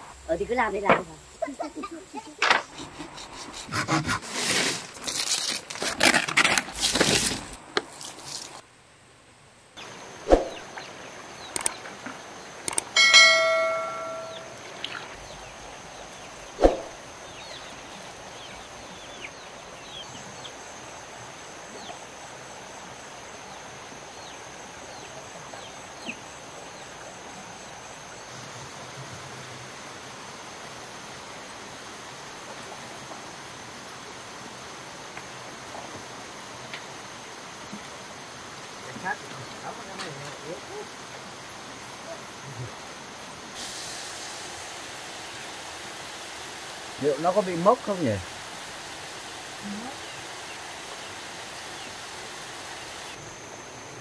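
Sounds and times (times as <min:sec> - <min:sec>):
high insect hum: 0:00.0 - 0:54.0
short metallic ring: 0:13.0 - 0:14.6
faint bird chirps: 0:13.1 - 0:20.6.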